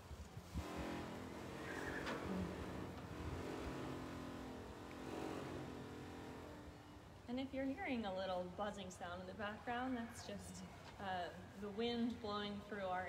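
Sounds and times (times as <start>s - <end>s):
wind buzzing through metal building: 0.0s - 13.0s.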